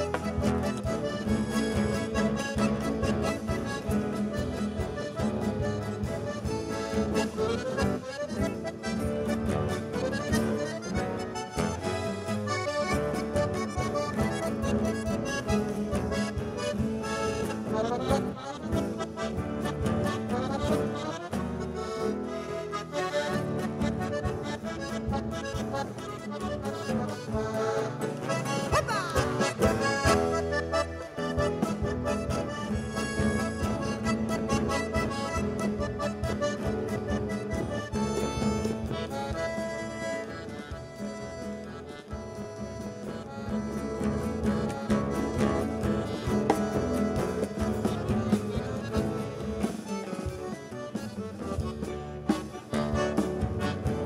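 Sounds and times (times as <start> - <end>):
accordion melody: 0.0 - 54.0
guitarron: 0.0 - 54.0.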